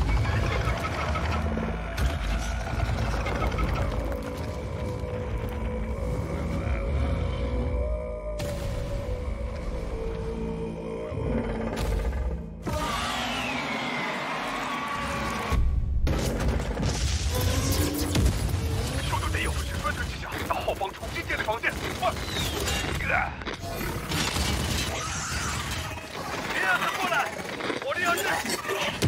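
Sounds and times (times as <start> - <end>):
deep creature rumble with rattling: 0.0 - 8.1, 9.8 - 12.6.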